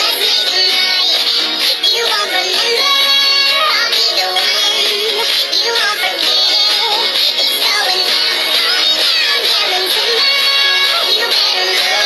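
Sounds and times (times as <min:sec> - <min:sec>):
girl singing along: 0:00.0 - 0:12.0
pop song through tablet speaker: 0:00.0 - 0:12.0.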